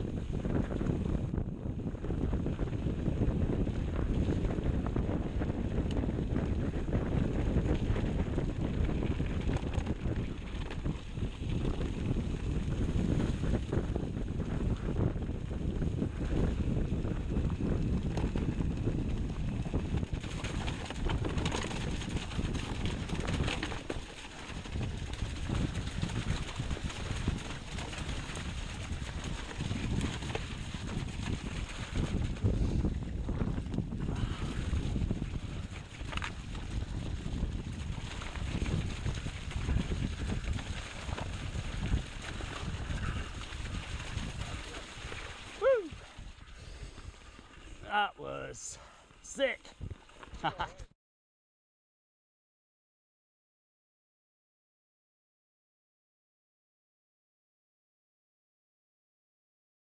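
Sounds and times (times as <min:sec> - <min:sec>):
wind buffeting microphone: 0:00.0 - 0:47.9, 0:49.7 - 0:50.9
bike tyres rolling on trail: 0:00.4 - 0:47.9
bike rattling over bumps: 0:15.9 - 0:33.4.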